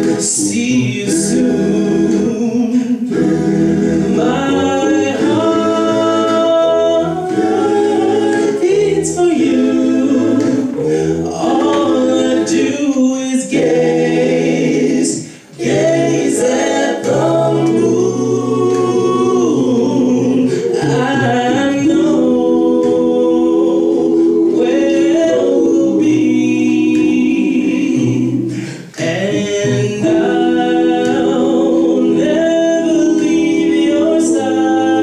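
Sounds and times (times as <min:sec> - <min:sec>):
male vocal group singing harmony: 0:00.0 - 0:35.0.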